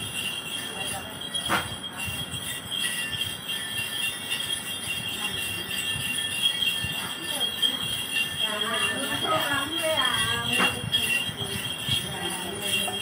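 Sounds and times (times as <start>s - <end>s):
small metal jingle bells shaken: 0.0s - 13.0s.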